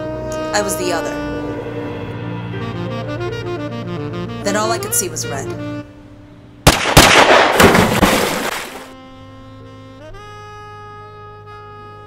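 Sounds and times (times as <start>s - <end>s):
loud bang: 6.6s - 8.8s
dense crashing noise: 7.4s - 9.0s.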